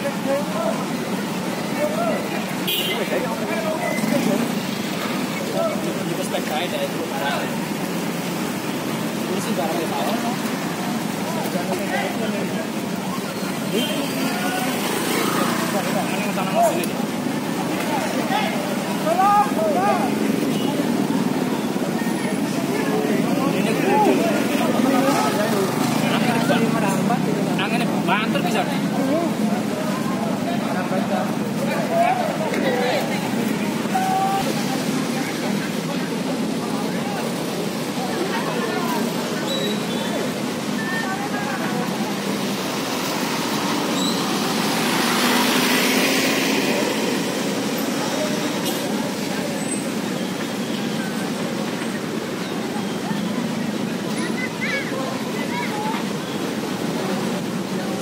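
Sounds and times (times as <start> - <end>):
crowd talking and calling out: 0.0 - 58.0
street traffic: 0.0 - 58.0.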